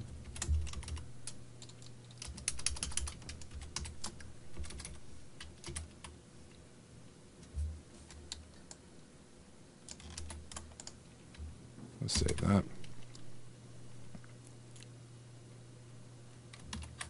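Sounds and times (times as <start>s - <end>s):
typing on computer keyboard: 0.2s - 6.1s, 9.9s - 11.0s, 16.5s - 17.0s.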